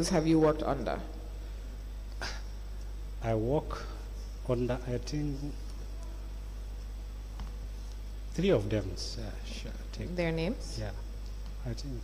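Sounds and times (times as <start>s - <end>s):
low electrical hum: 0.0s - 12.0s
soft hiss: 0.0s - 12.0s.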